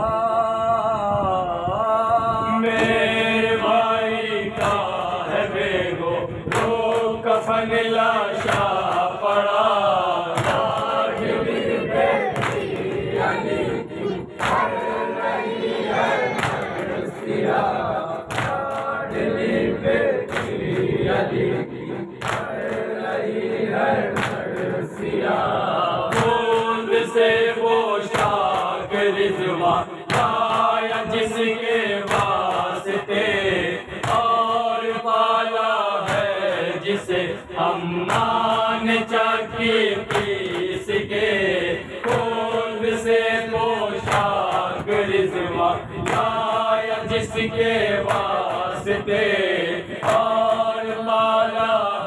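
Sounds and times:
men chanting together: 0.0s - 52.0s
hand slaps on chest: 6.5s - 7.1s, 10.4s - 11.3s, 12.4s - 13.0s, 18.3s - 18.9s, 24.2s - 24.7s, 32.1s - 32.4s, 34.0s - 34.3s, 40.1s - 40.8s, 42.0s - 42.3s, 50.0s - 50.4s.

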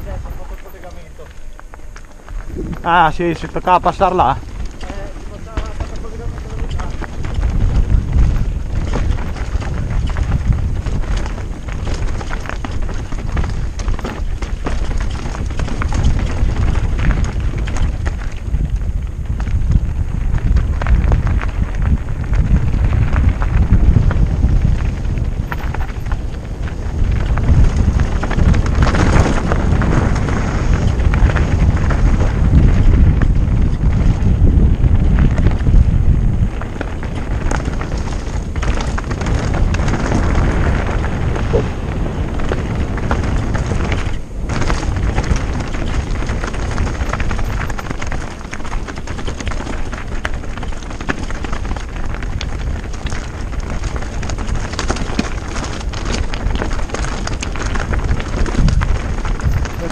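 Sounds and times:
bike rattling and knocking: 0.0s - 59.9s
tyres crunching on stones: 0.0s - 59.9s
wind buffeting microphone: 0.0s - 59.9s.

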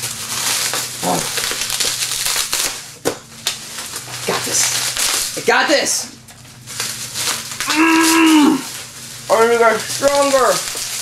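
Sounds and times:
bubble wrap cracking: 0.0s - 11.0s
bubble wrap crinkling and rustling: 0.0s - 11.0s.

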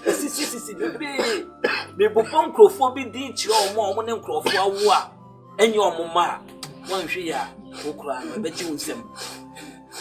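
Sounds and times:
man speaking: 0.0s - 1.4s, 2.0s - 9.2s
background music: 0.0s - 10.0s.

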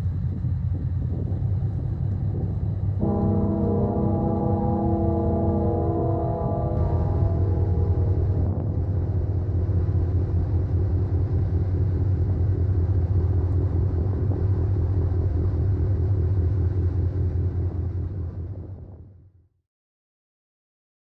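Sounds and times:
low engine rumble: 0.0s - 19.1s.

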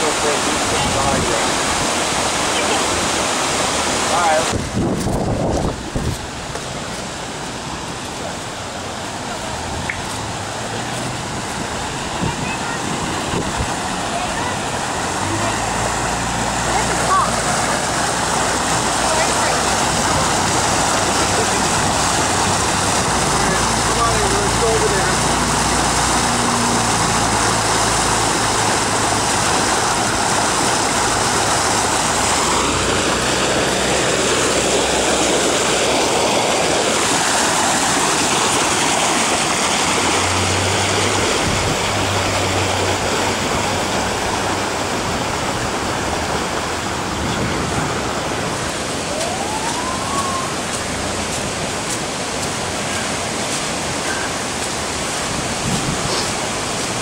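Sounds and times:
floodwater rushing: 0.0s - 57.0s.

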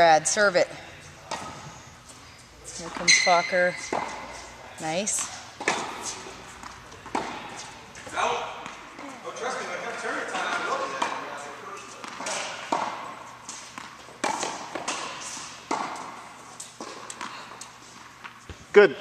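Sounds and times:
tennis balls struck by rackets: 1.2s - 1.7s, 2.8s - 9.0s, 10.5s - 18.7s
tennis balls bouncing on court: 1.2s - 2.2s, 2.8s - 4.4s, 5.0s - 9.2s, 10.4s - 18.8s
people talking: 2.6s - 3.9s, 4.8s - 5.4s, 8.1s - 12.5s.

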